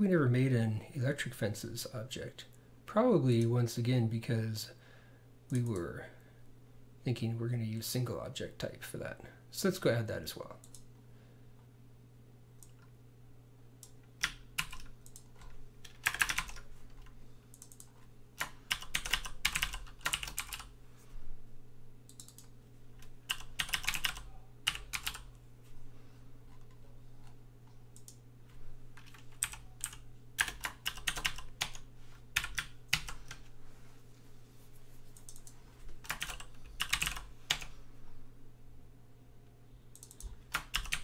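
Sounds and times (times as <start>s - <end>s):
typing on computer keyboard: 14.2s - 20.7s, 22.1s - 22.5s, 23.3s - 25.3s, 29.0s - 31.8s, 32.4s - 33.4s, 35.2s - 37.7s, 40.0s - 41.0s.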